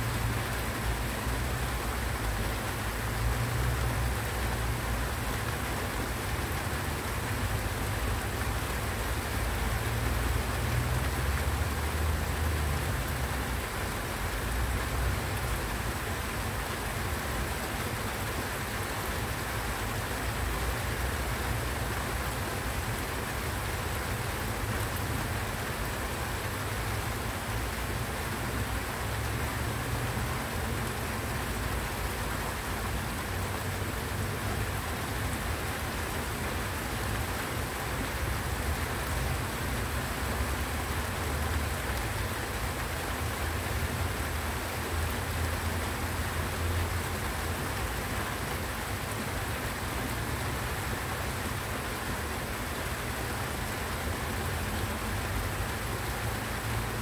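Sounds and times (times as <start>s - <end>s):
rain falling on leaves: 0.0s - 57.0s.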